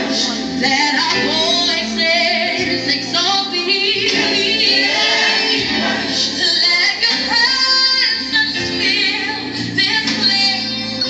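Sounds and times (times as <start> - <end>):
gospel choir and women singing: 0.0 - 11.0.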